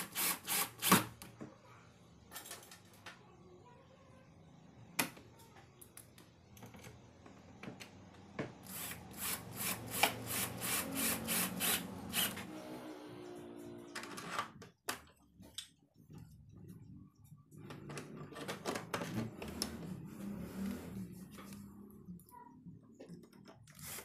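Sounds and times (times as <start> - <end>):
drill motor humming: 8.7 - 12.6.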